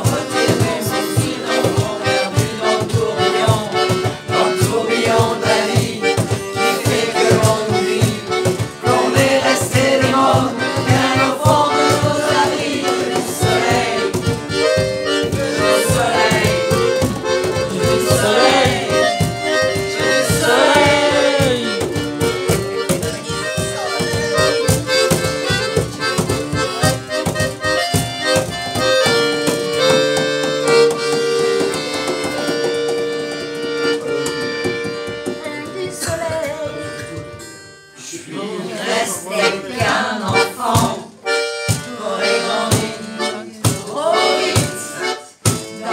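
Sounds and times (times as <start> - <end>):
group singing along: 0.0 - 22.1, 38.0 - 41.2, 41.8 - 45.9
button accordion: 0.0 - 37.8, 38.4 - 45.9
strummed acoustic guitar: 0.0 - 38.0.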